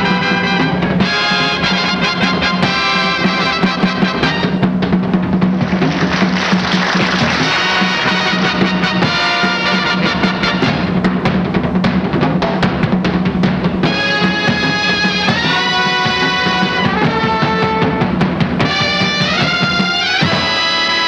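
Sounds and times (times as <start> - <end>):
held horn notes: 0.0 - 4.8, 5.7 - 11.0, 13.8 - 21.0
jazz band playing: 0.0 - 21.0
rapid busy drumming: 0.0 - 21.0.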